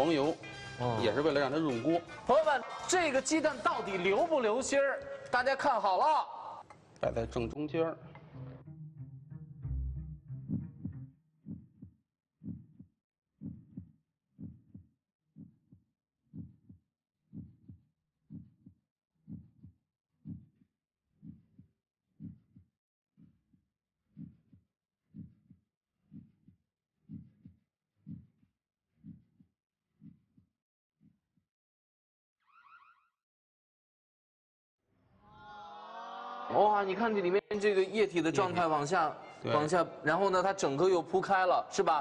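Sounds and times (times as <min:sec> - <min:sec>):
heartbeat thumps: 0:09.7 - 0:20.6, 0:21.2 - 0:23.4, 0:24.1 - 0:28.4, 0:29.0 - 0:30.2.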